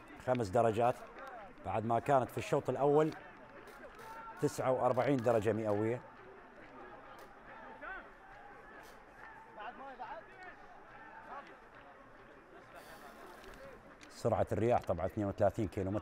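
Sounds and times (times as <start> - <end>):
open-air stadium ambience: 0.0 - 16.0
people talking and calling out: 0.0 - 16.0.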